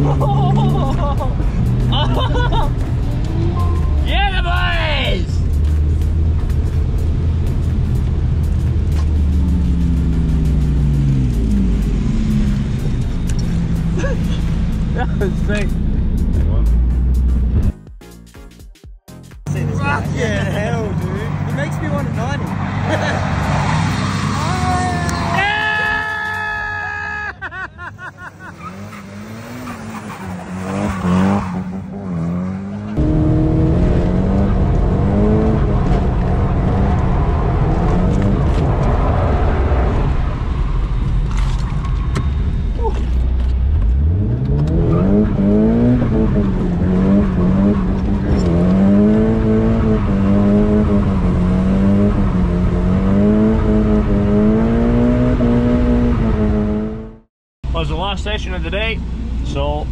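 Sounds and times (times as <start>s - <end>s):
car engine revving: 0.0s - 17.8s, 19.5s - 25.6s, 28.3s - 57.3s.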